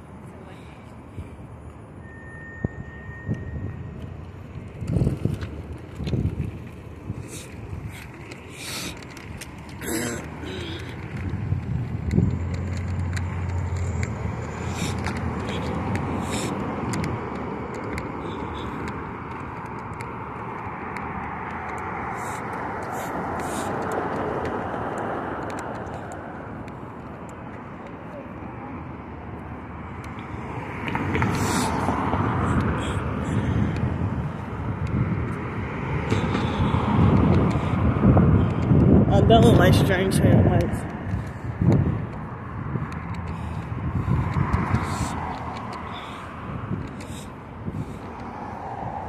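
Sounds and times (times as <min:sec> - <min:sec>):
cars passing: 0:00.0 - 0:49.0.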